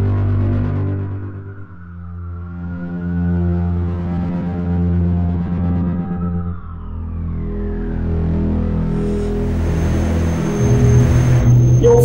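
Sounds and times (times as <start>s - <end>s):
low ambient drone: 0.0s - 12.0s.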